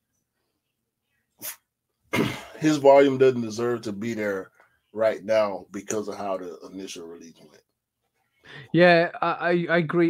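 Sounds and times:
person sniffing sharply: 1.4s - 2.3s.

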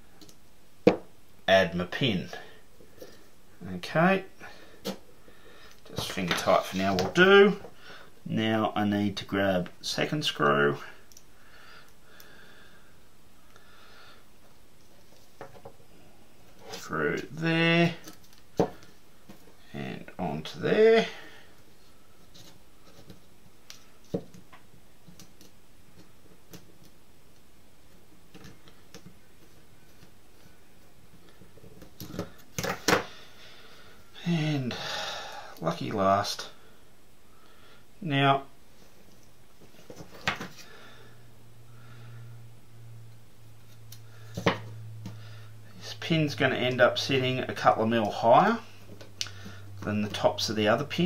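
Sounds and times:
person breathing: 4.4s - 5.8s, 7.7s - 8.2s, 11.0s - 14.3s, 21.0s - 22.1s, 33.0s - 35.6s, 36.6s - 38.0s, 40.5s - 42.5s, 45.1s - 45.8s, 48.6s - 49.8s.

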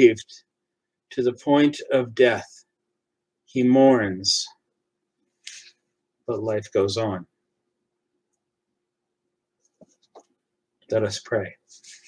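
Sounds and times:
man speaking: 0.0s - 0.4s, 1.1s - 2.7s, 3.5s - 4.6s, 6.3s - 7.3s, 10.9s - 12.0s.

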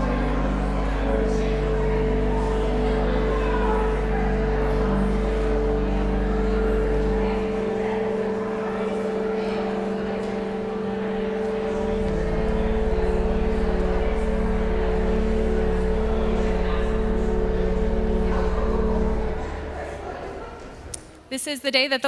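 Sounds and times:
pipe organ chords: 0.0s - 20.8s.

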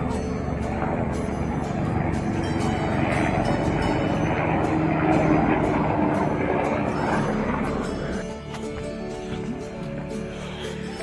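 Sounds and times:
helicopter engine and rotor: 0.0s - 11.0s.

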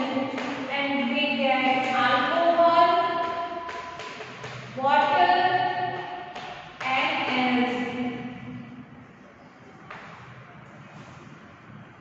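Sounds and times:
chalk tapping on blackboard: 3.2s - 4.8s.

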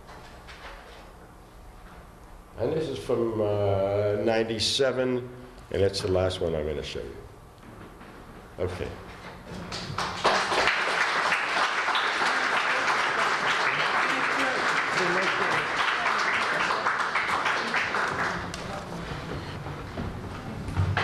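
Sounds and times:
audience applauding: 9.6s - 19.6s.

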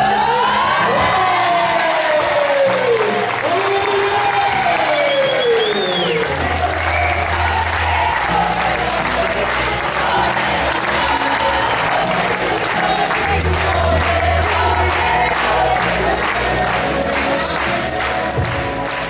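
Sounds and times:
crowd applauding: 0.0s - 19.0s
music with sung melody and bass: 0.0s - 19.0s.

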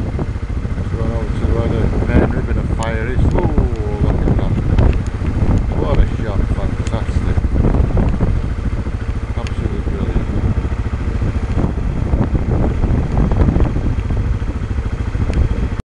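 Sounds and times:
helicopter engine and rotor: 0.0s - 15.8s.

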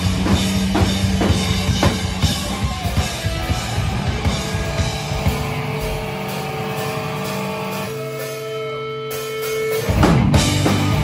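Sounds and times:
electric guitars and bass ringing chord: 0.0s - 11.0s.

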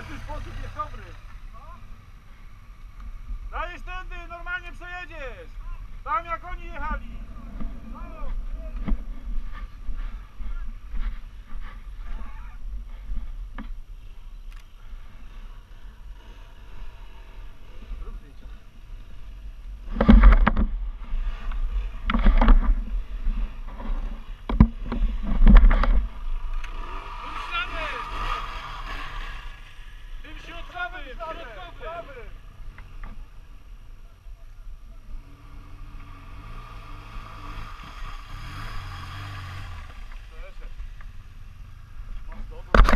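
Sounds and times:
motorcycle engines running: 0.0s - 42.9s
steady low rumble: 5.4s - 14.2s.

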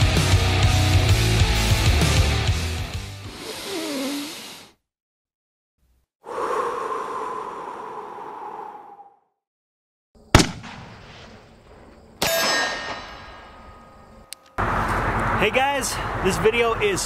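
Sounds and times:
ringing metallic clangs: 12.2s - 14.6s.

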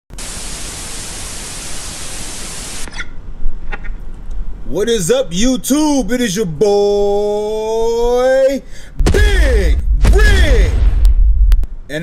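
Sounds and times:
loud static hiss: 0.1s - 3.4s, 8.9s - 12.0s
low thump: 9.0s - 11.8s
low rumble: 9.0s - 12.0s.

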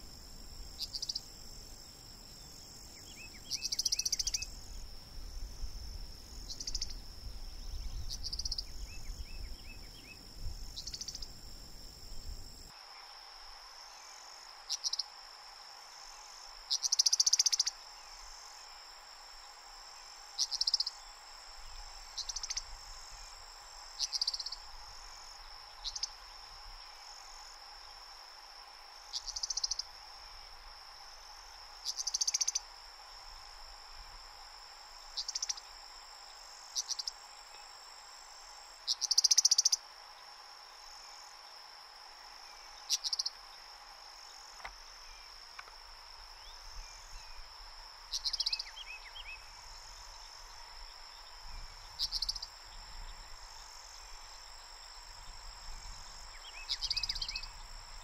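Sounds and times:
high-pitched insect trill: 0.0s - 58.0s.

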